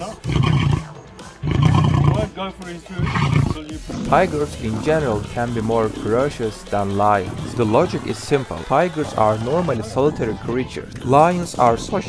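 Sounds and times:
lion roaring: 0.0s - 2.3s, 3.0s - 4.8s.

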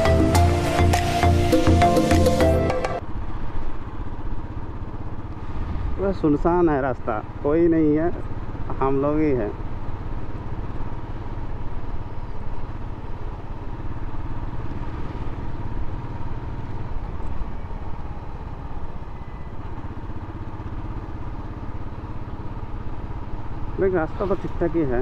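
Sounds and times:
motorcycle engine running: 0.0s - 25.0s.

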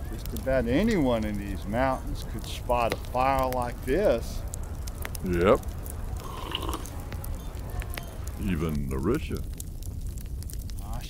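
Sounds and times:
campfire crackling: 0.0s - 11.0s.

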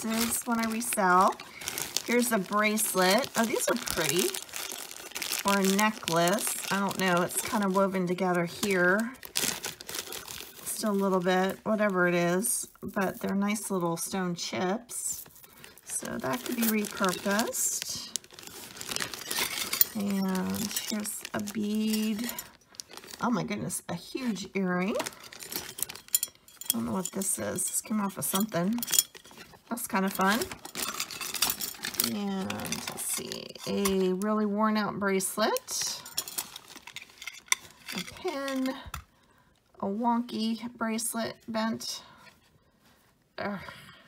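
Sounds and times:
jewelry rummaged in bag: 0.0s - 12.0s, 15.2s - 23.5s, 24.2s - 34.4s, 35.3s - 39.1s
plastic bag crinkling: 0.0s - 12.0s, 15.2s - 23.5s, 24.7s - 34.2s, 35.5s - 39.1s.

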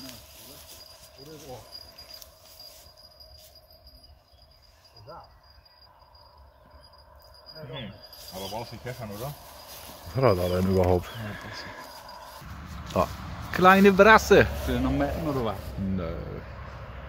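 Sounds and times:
distant voices: 0.0s - 17.0s.

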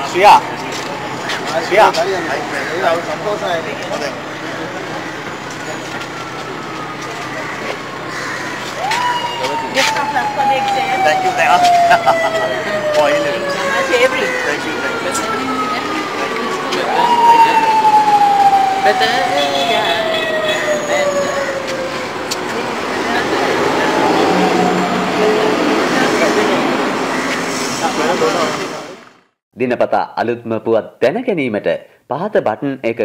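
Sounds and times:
street traffic noise: 0.0s - 29.4s
high tone falling in pitch: 8.8s - 27.3s
background voices: 9.5s - 29.1s.

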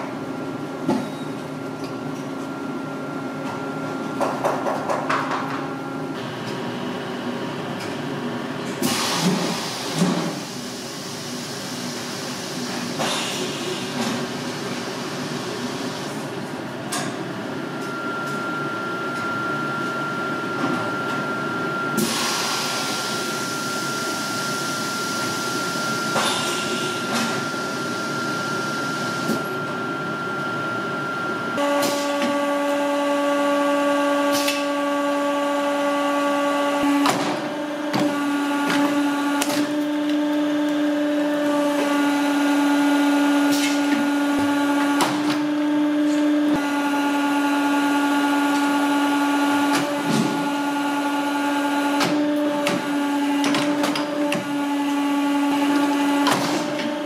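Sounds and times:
hydraulic machine humming: 5.4s - 57.0s.

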